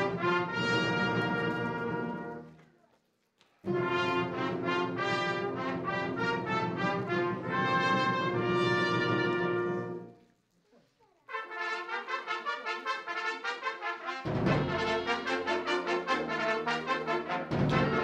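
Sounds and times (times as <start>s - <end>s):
wind band playing held chords: 0.0s - 2.4s, 3.7s - 10.1s, 11.4s - 18.0s.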